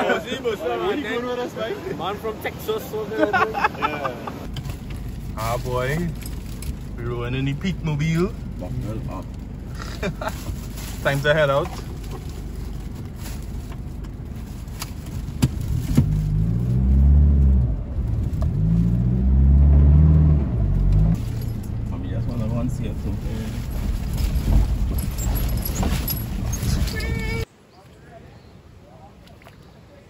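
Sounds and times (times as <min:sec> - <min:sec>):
pickup engine revving: 0:15.3 - 0:26.5.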